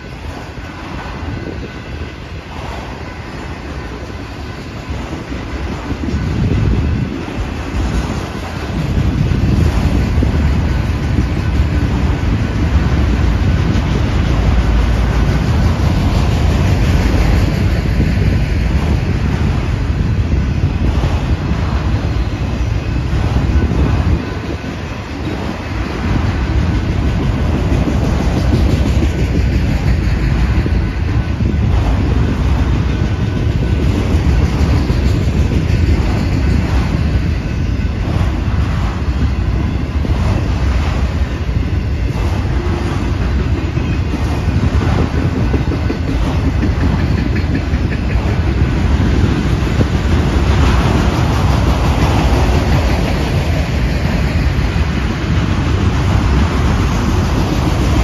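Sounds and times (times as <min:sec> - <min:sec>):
train wheels rumbling on rail: 0:00.0 - 0:58.0
wheels clicking over rail joints: 0:00.0 - 0:58.0.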